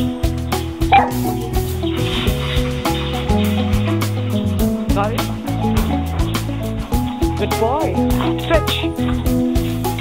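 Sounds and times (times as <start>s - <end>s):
music with held notes: 0.0s - 10.0s
dog barking: 0.9s - 1.3s.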